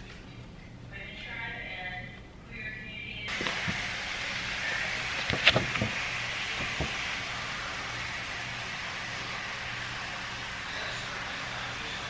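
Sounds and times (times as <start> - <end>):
steady hiss: 3.3 - 12.0
paper card clicks and rustles: 5.2 - 6.0.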